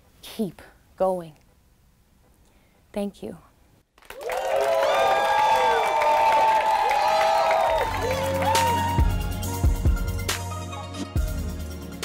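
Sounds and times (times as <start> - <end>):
audience applauding: 4.0 - 9.3
voices whooping: 4.2 - 9.3
music with steady bass line: 7.9 - 12.0.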